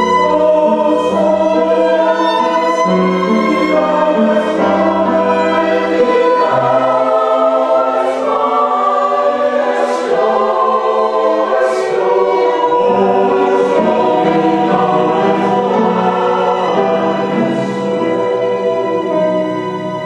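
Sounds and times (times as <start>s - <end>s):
choir singing slow chords: 0.0s - 20.0s
violins playing: 0.0s - 20.0s.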